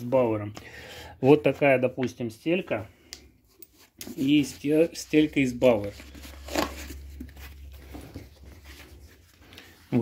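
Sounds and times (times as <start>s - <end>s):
soft rustling: 3.4s - 10.0s.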